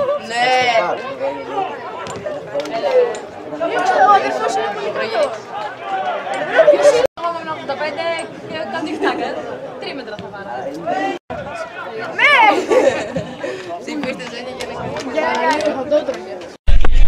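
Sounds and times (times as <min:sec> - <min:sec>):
men talking and calling out: 0:00.0 - 0:16.6.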